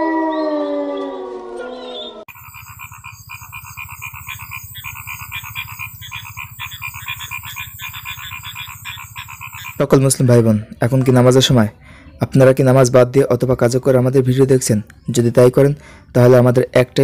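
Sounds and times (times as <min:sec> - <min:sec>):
falling howl: 0:00.0 - 0:02.3
frog chorus: 0:02.3 - 0:10.4.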